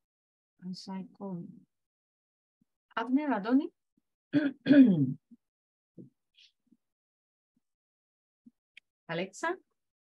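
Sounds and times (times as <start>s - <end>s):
person clearing throat: 4.4s - 5.2s.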